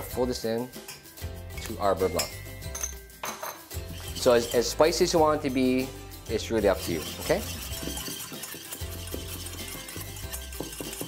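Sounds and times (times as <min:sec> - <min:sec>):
soft background music: 0:00.0 - 0:11.0
utensil stirring in metal bowl: 0:03.8 - 0:11.0.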